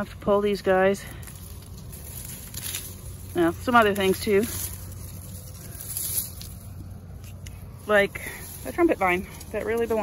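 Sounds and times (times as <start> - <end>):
plants rustling: 0.0 - 10.0
steady low hum: 0.0 - 10.0.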